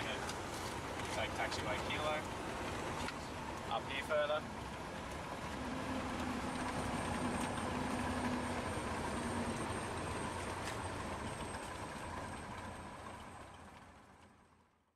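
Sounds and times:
aircraft piston engine drone: 0.0s - 13.9s.

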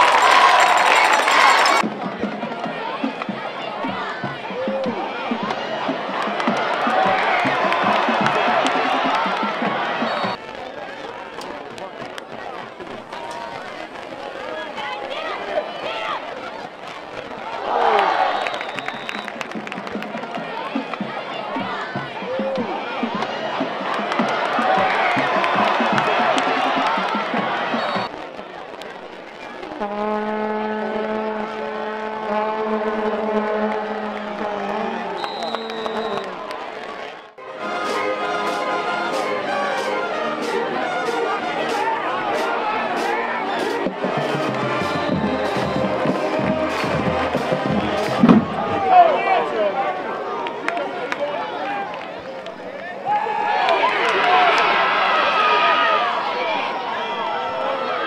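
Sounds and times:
scattered voices: 0.0s - 18.0s, 18.6s - 29.8s, 37.6s - 58.0s
stadium crowd cheering: 0.0s - 58.0s
brass band holding low note: 37.4s - 49.2s.

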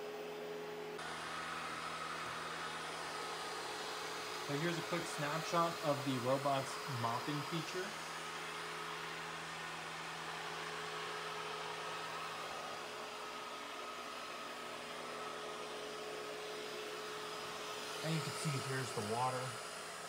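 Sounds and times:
robot vacuum whirring: 1.0s - 20.0s.

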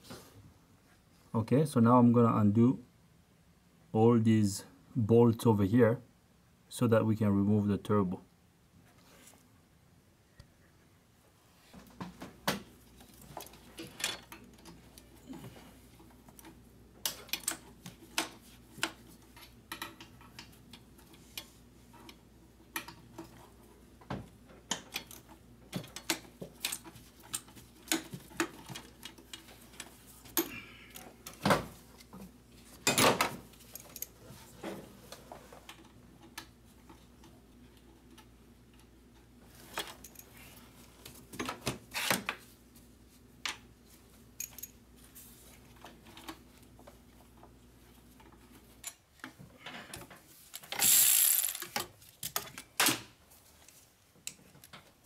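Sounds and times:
metal tools clinking: 39.8s - 40.5s, 44.4s - 44.8s, 50.6s - 51.8s
ratchet wrench clicking: 50.6s - 51.8s.

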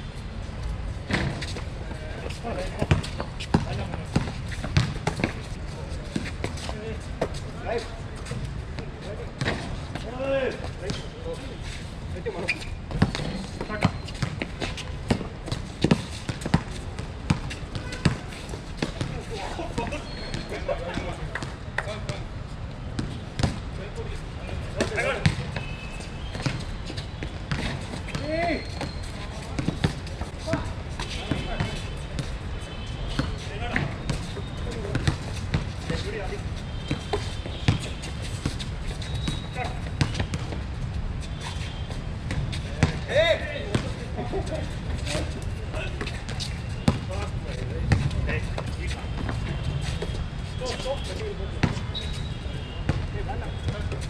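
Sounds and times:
basketball bouncing: 2.8s - 5.4s, 15.1s - 19.1s, 23.0s - 23.6s, 24.8s - 29.0s
distant shouts: 24.4s - 29.8s.

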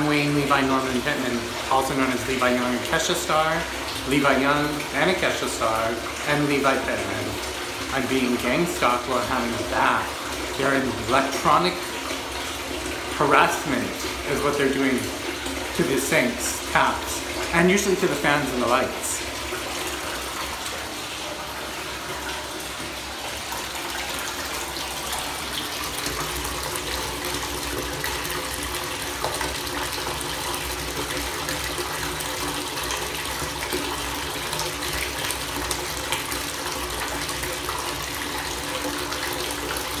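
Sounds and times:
water running from bathtub tap: 0.0s - 40.0s.

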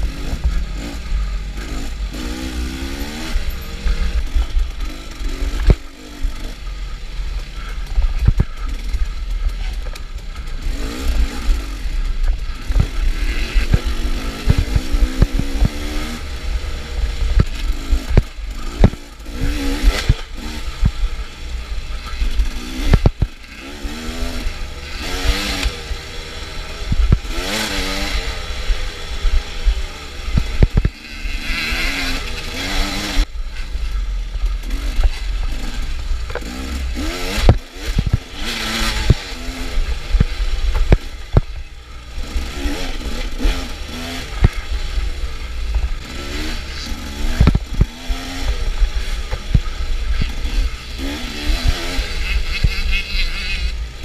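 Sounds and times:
dirt bike engine revving: 0.0s - 54.0s
knocks and clatter over rough ground: 0.0s - 54.0s.

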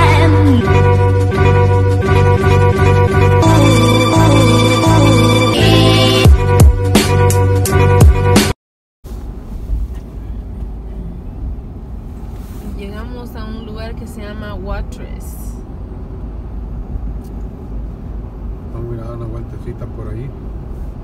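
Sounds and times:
car driving interior rumble: 9.1s - 21.0s.

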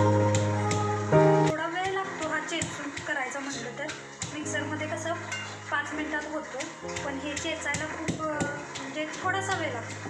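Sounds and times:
background music: 0.0s - 10.0s
pestle knocking metal pan: 6.6s - 10.0s.

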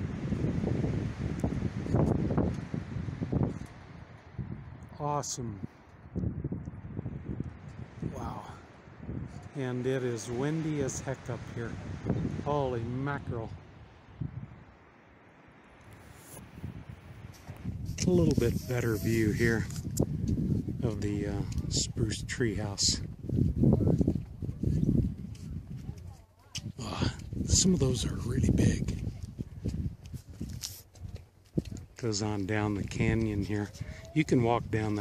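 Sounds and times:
wind buffeting microphone: 0.0s - 14.8s, 15.8s - 35.0s.

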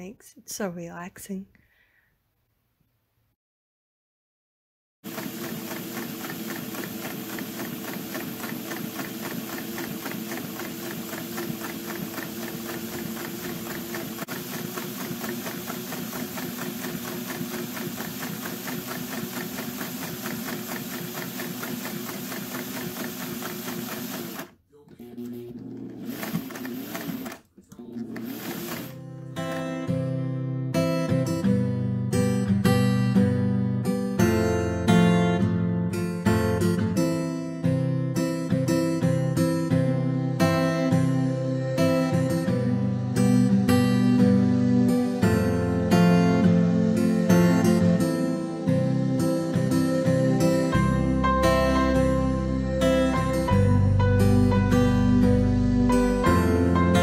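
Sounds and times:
sewing machine running: 5.1s - 24.6s, 25.6s - 29.7s
acoustic guitar music: 28.2s - 57.0s.

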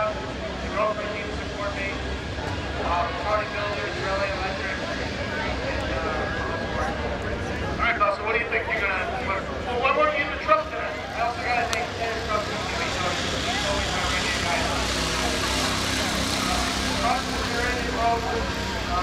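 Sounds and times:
road noise: 0.0s - 19.0s
truck engine hum: 0.0s - 19.0s
voices talking: 0.0s - 19.0s.

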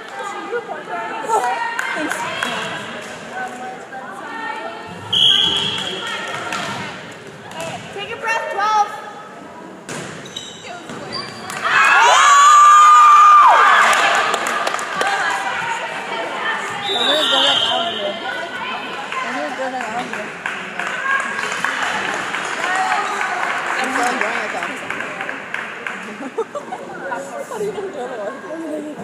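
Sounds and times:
spectators' voices: 0.0s - 29.0s
referee's whistle: 5.1s - 6.0s, 16.8s - 18.2s.

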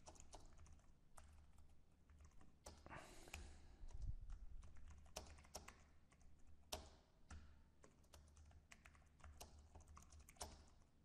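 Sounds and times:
keyboard typing clicks: 0.0s - 10.9s.

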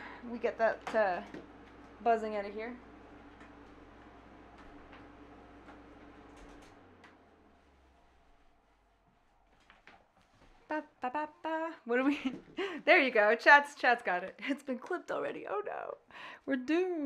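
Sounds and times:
air conditioner buzz: 0.0s - 17.0s.

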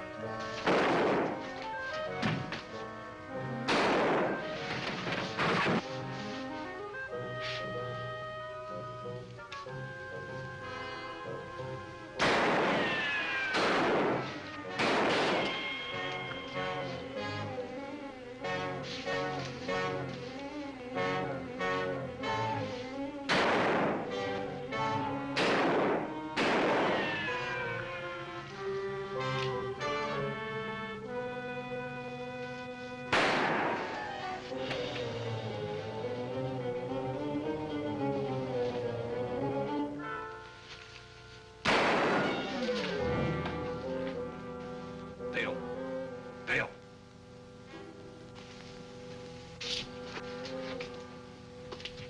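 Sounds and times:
orchestral music with strings and brass: 0.0s - 52.0s.

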